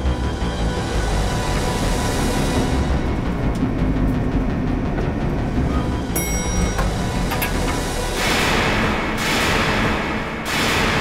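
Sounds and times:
tense drama score: 0.0 - 11.0
high ringing tone: 6.1 - 7.7.

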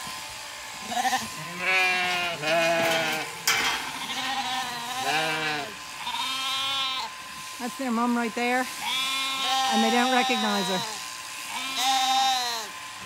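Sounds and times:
lambs bleating: 0.8 - 7.2, 8.8 - 12.8.

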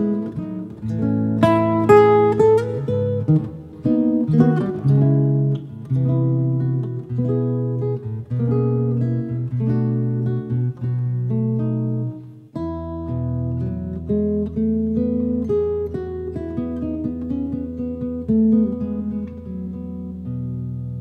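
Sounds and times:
solo jazz guitar: 0.0 - 21.0.

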